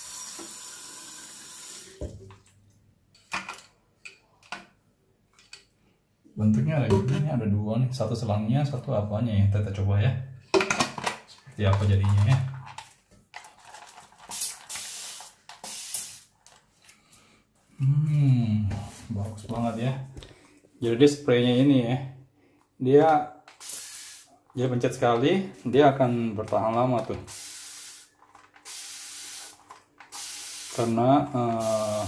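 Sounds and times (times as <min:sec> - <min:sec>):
spray bottle hissing bursts: 0:14.3 - 0:16.3, 0:23.6 - 0:24.3, 0:27.3 - 0:31.0, 0:31.6 - 0:32.0.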